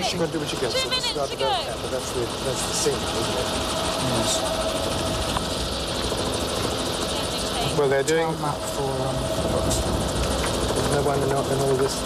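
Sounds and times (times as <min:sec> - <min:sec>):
helicopter engine and rotor: 0:00.0 - 0:12.0.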